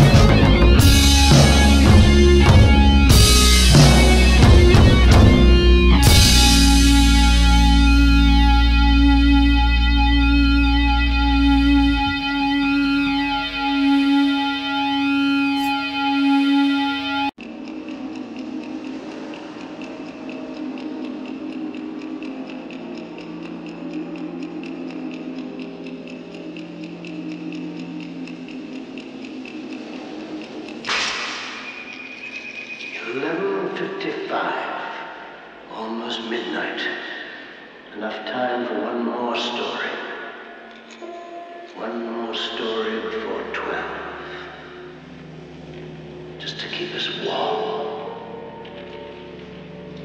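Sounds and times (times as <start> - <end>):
distorted electric guitar chord: 0.0 - 17.3
dark ambient music: 0.0 - 50.0.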